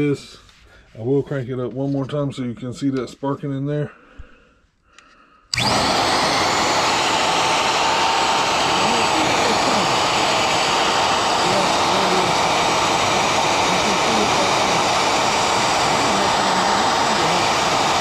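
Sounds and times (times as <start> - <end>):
router motor running: 5.5 - 18.0.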